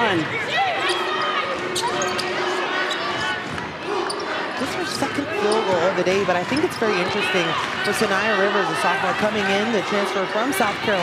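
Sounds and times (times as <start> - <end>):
murmur of crowd: 0.0 - 11.0.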